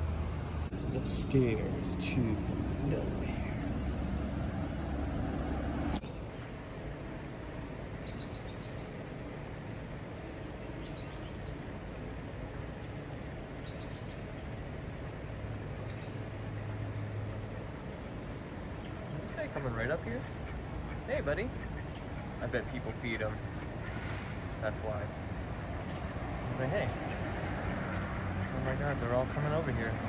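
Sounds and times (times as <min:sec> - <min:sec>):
low hum: 0:00.0 - 0:19.3.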